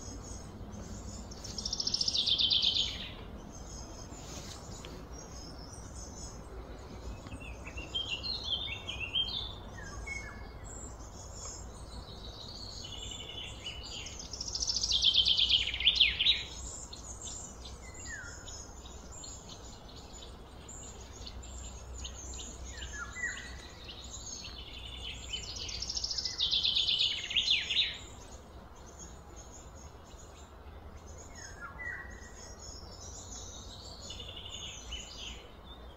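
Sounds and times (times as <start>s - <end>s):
birds chirping: 0.0s - 35.9s.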